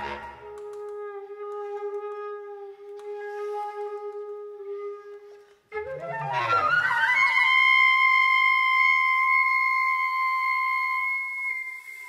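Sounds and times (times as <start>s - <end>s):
flute holding high note: 0.0s - 12.0s.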